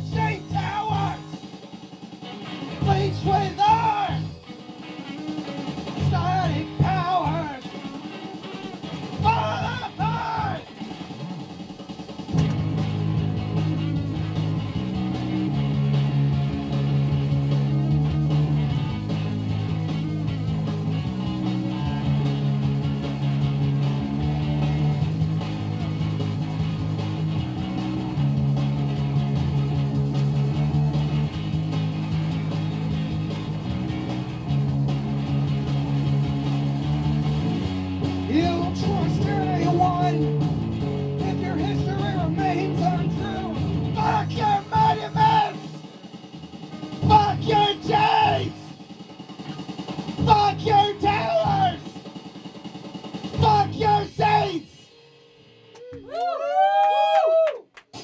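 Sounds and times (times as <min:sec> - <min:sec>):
electric guitar: 0:00.0 - 0:45.9
backing track: 0:00.0 - 0:56.4
loud low chords: 0:12.3 - 0:45.7
person singing: 0:53.4 - 0:54.9.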